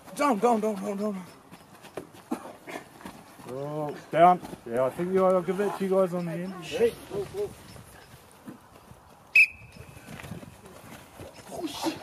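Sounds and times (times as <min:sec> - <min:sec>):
sharp whistle blast: 0:09.3 - 0:09.8.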